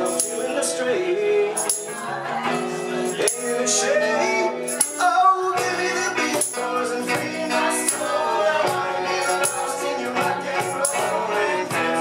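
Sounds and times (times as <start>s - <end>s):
electric guitar: 0.0s - 12.0s
male lead vocal: 0.0s - 12.0s
sharp percussion strokes: 4.6s - 12.0s.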